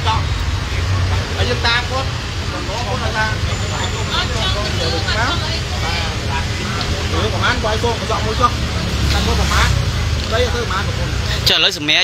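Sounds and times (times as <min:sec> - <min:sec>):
people talking indistinctly: 0:00.0 - 0:12.0
street traffic rumble: 0:00.0 - 0:12.0.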